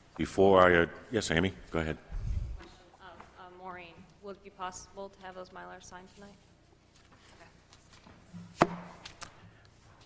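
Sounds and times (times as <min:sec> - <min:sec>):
sharp knock: 0:08.6 - 0:09.0.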